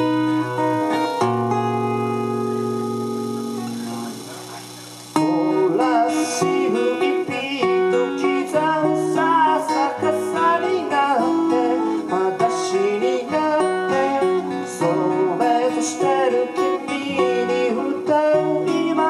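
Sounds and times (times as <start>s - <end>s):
acoustic guitars: 0.0s - 19.0s
man singing: 5.2s - 19.0s.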